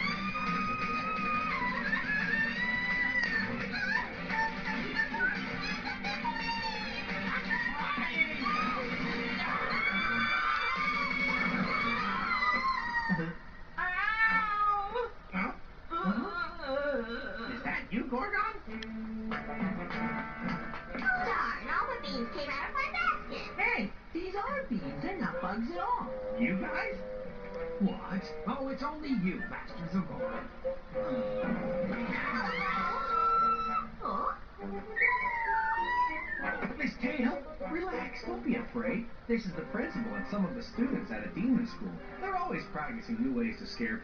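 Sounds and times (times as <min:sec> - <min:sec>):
high-pitched drawn-out cry: 0:09.4 - 0:15.0, 0:32.1 - 0:34.4, 0:35.0 - 0:36.5.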